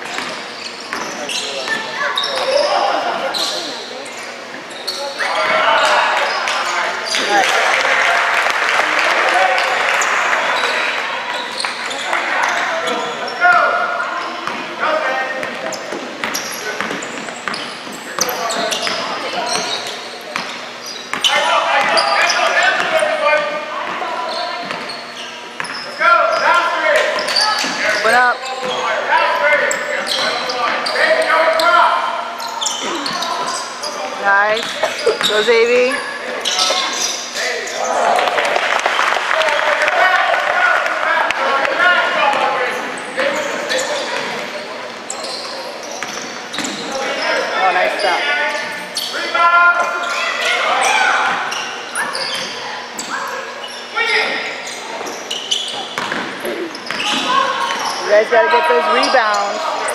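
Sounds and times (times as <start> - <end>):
voices calling out in gym: 0.0 - 59.9.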